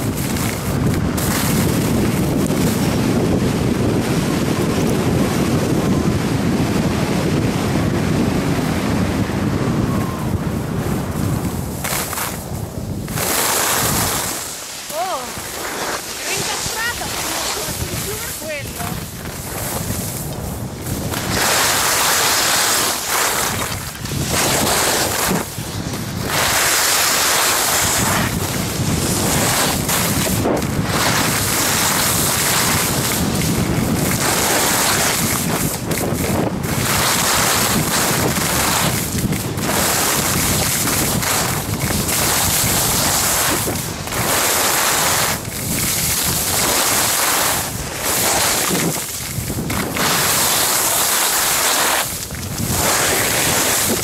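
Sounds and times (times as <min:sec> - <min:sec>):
skis scraping over snow: 0:00.0 - 0:06.6, 0:08.1 - 0:54.0
wind buffeting microphone: 0:00.0 - 0:54.0.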